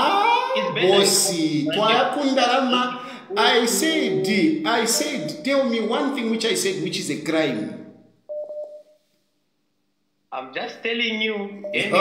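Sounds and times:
electronic telephone beep: 0:08.3 - 0:08.8, 0:11.6 - 0:12.0.

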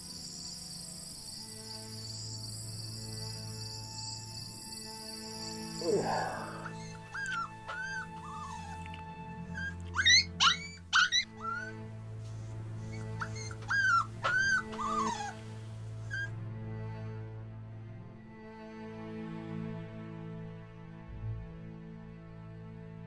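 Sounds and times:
low music drone: 0:00.0 - 0:10.0, 0:11.3 - 0:23.0
dog whimpering and yelping: 0:05.8 - 0:08.9, 0:09.5 - 0:15.4, 0:16.0 - 0:16.3.

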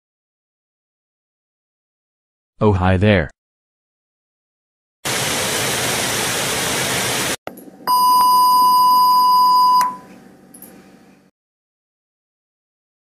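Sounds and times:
test-card bleep tone: 0:07.9 - 0:10.1.

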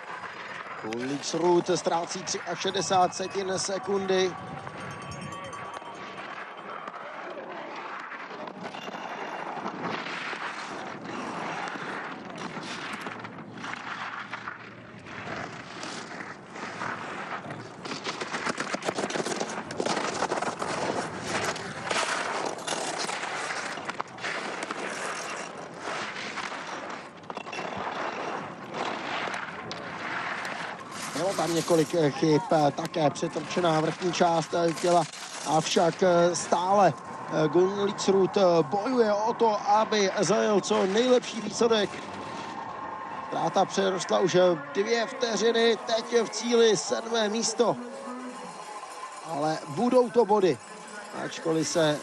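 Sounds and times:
skis scraping on snow: 0:00.0 - 0:04.3, 0:07.3 - 0:52.0.

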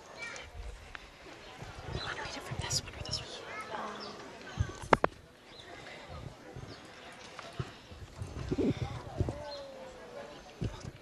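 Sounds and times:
low background murmur: 0:00.0 - 0:11.0
microphone handling noise: 0:04.6 - 0:05.2, 0:07.6 - 0:09.5.

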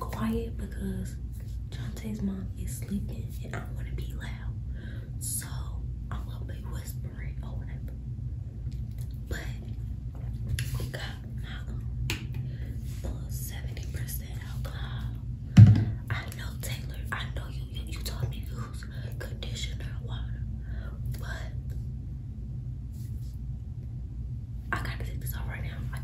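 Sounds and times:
woman whispering: 0:00.0 - 0:04.6, 0:05.2 - 0:08.0, 0:09.2 - 0:09.9, 0:10.7 - 0:11.9, 0:12.8 - 0:15.2, 0:16.0 - 0:21.8, 0:24.7 - 0:26.0
steady low hum: 0:00.0 - 0:26.0
loud thump: 0:15.6 - 0:16.0.

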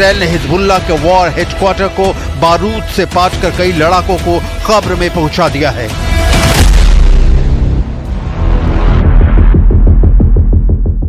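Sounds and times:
background music: 0:00.0 - 0:11.0
explosion boom and rumble: 0:06.5 - 0:11.0.

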